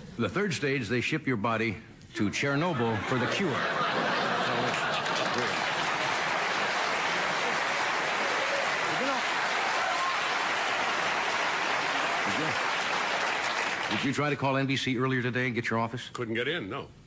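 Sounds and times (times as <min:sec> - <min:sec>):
studio audience applauding: 0:03.9 - 0:14.4.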